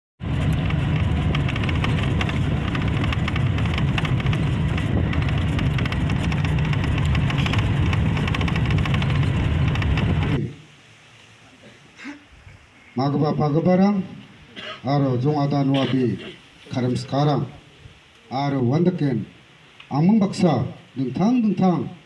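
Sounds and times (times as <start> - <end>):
rapid crackle or rattle: 0.2 - 10.4
vehicle engine and road rumble: 0.2 - 10.5.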